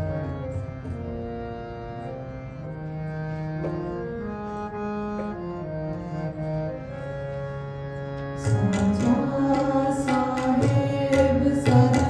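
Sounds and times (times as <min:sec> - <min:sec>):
harmonium playing slow melody: 0:00.0 - 0:12.0.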